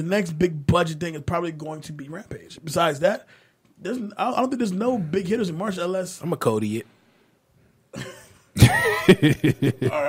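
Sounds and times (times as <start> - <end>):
short breath: 3.3 - 3.6
man bursting into laughter: 8.0 - 10.0.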